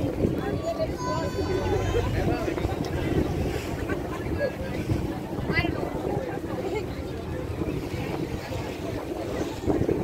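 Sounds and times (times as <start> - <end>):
crowd talking: 0.0 - 10.0
wind buffeting microphone: 0.0 - 10.0.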